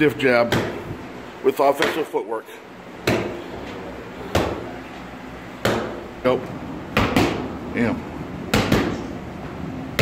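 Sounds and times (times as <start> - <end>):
boxing gloves striking focus mitts: 3.0 - 3.4, 4.3 - 4.7, 5.6 - 6.0, 6.9 - 7.5, 8.5 - 9.1.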